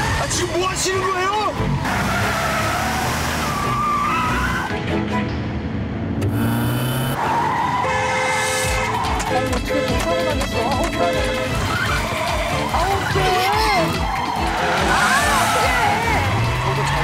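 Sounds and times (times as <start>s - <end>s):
car tyres squealing: 1.6s - 4.8s, 6.3s - 9.4s, 14.1s - 17.0s.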